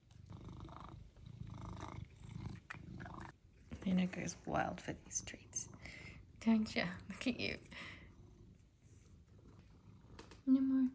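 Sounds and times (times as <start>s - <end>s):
cat purring: 0.0s - 10.9s.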